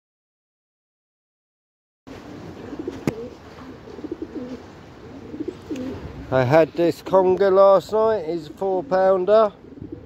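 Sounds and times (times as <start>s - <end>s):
background hiss: 2.1s - 10.0s
pigeons cooing: 2.2s - 6.3s, 8.2s - 10.0s.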